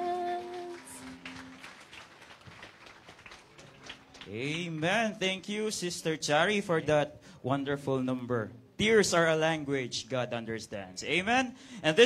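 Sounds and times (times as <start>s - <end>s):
woman singing: 0.0s - 1.2s.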